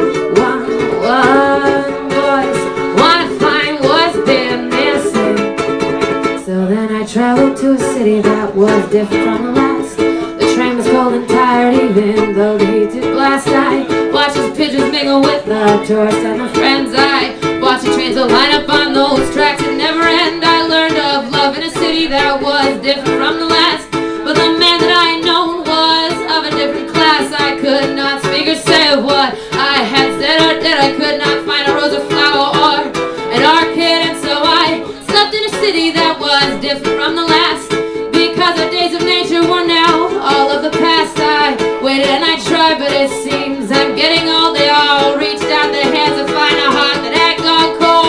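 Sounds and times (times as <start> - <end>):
ukulele strumming: 0.0 - 48.0
woman singing: 0.0 - 48.0.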